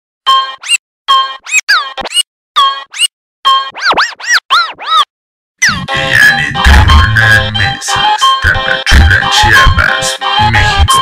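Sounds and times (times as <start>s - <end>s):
turntable scratching: 3.7s - 11.0s.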